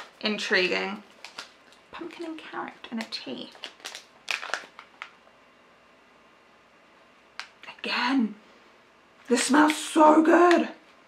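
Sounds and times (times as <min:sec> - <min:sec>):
tea pouch crinkling: 0:00.0 - 0:00.2, 0:01.0 - 0:05.3.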